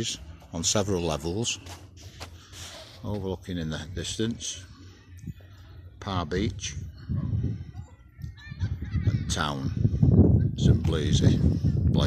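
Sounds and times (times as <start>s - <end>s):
wind on microphone: 6.5s - 12.0s.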